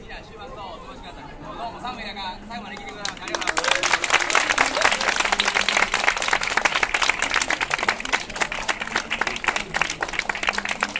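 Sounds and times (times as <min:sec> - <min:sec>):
audience clapping: 0:02.7 - 0:10.9.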